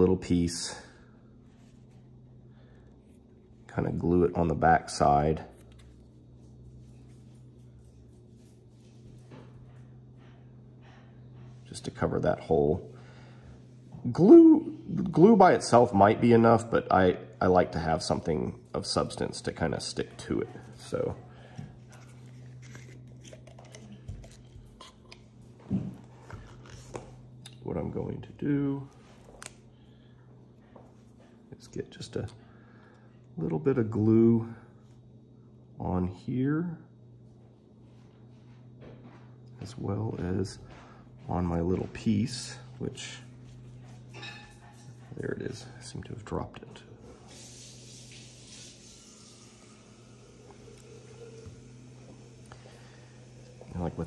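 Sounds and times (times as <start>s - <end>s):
low steady hum: 0.0s - 54.0s.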